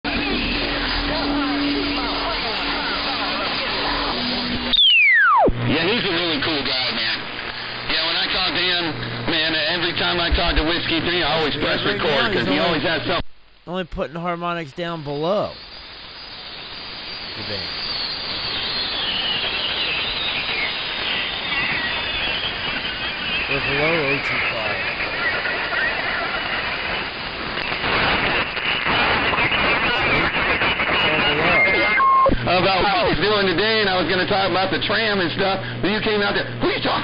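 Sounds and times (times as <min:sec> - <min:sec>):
garbled radio voice: 0:11.3 - 0:12.8, 0:13.7 - 0:15.6, 0:17.4 - 0:17.8, 0:23.5 - 0:25.0, 0:29.9 - 0:30.3, 0:31.0 - 0:31.8
steady radio tone: 0:11.3 - 0:12.8, 0:13.7 - 0:15.6, 0:17.4 - 0:17.8, 0:23.5 - 0:25.0, 0:29.9 - 0:30.3, 0:31.0 - 0:32.0.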